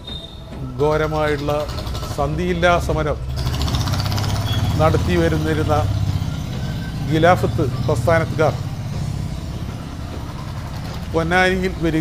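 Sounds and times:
engine humming: 0.0 - 12.0.

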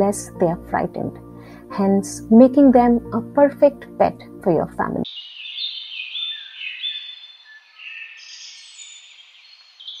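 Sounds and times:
birds chirping and whistling: 5.1 - 10.0.

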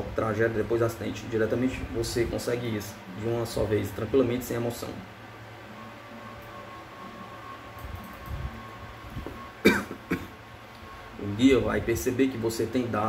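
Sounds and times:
man coughing: 9.6 - 10.4.

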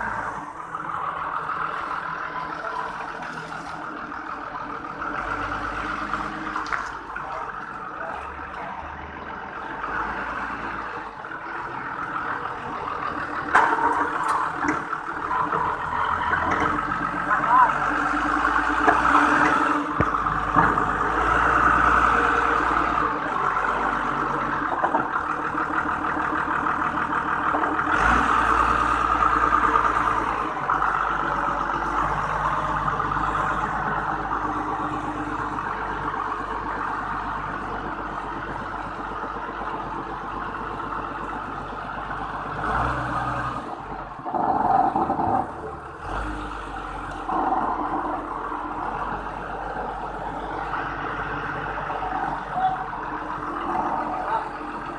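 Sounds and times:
forklift engine running: 0.0 - 54.9.

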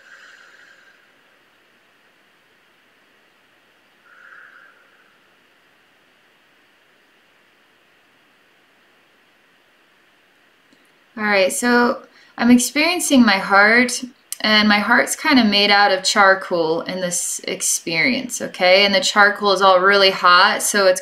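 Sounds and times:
soft breaths: 0.0 - 1.4, 4.0 - 5.5
faint room hiss: 0.0 - 21.0.

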